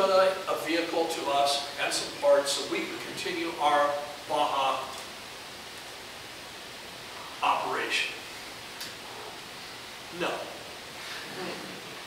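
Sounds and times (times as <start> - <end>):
steady room noise hiss: 0.0 - 12.0.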